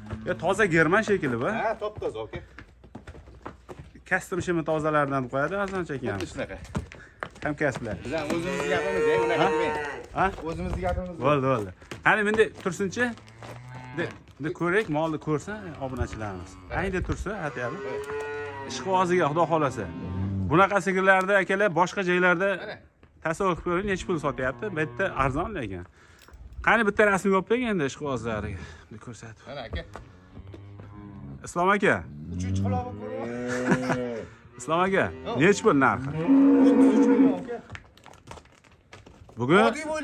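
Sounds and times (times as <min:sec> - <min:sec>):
cattle mooing: 0:00.0 - 0:00.9, 0:07.9 - 0:10.1, 0:13.2 - 0:14.2, 0:15.5 - 0:20.6, 0:32.1 - 0:37.6.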